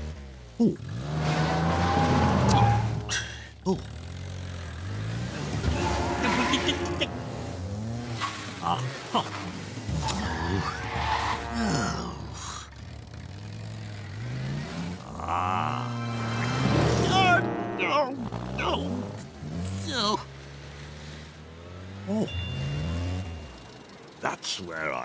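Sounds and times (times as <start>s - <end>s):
cartoon car engine revving: 0.0s - 24.0s
tyre squeal: 1.3s - 3.4s, 5.4s - 7.2s, 8.1s - 12.0s.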